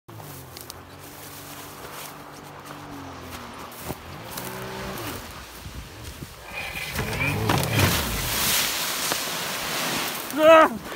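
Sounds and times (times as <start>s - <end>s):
atv engine revving: 0.1s - 8.4s
water rushing: 6.3s - 10.9s.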